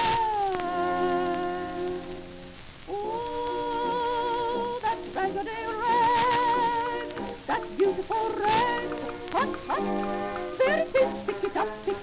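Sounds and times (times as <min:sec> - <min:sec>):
old gramophone ragtime song: 0:00.0 - 0:12.0.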